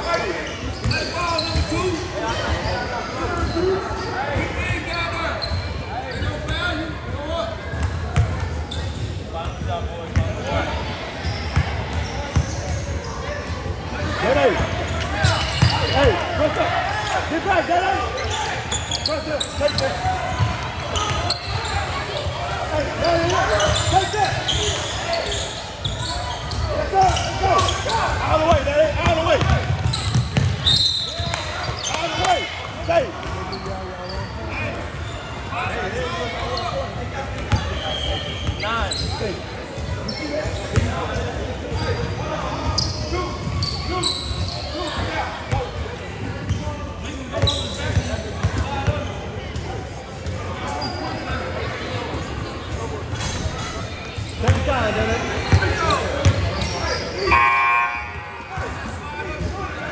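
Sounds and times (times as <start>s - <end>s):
echoing crowd voices: 0.0s - 59.9s
basketball bouncing on gym floor: 28.5s - 30.6s.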